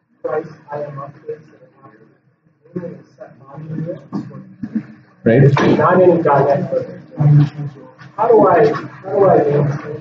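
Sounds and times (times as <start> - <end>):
person talking: 2.7 - 10.0.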